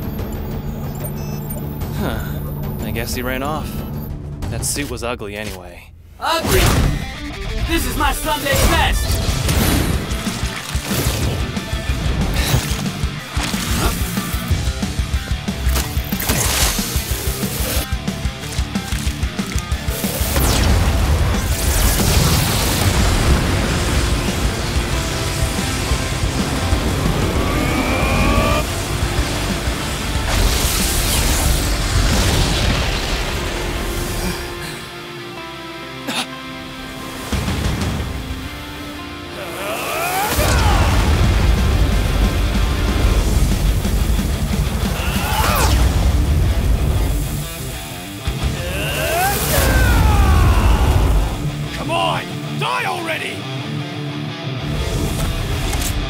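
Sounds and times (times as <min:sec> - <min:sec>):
dramatic soundtrack music: 0:00.0 - 0:56.0
rising whine: 0:24.3 - 0:31.7.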